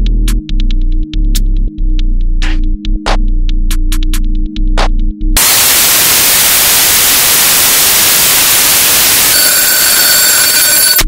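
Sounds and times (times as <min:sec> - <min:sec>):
trap beat drums and bass: 0:00.0 - 0:05.4
white noise hiss: 0:05.4 - 0:09.3
high steady tones: 0:05.4 - 0:11.0.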